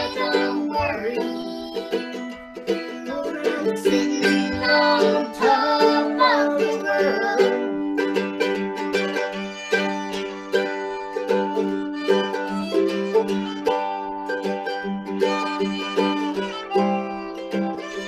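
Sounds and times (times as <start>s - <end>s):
woman and girl singing: 0.0s - 8.0s
mandolin strumming: 0.0s - 18.0s.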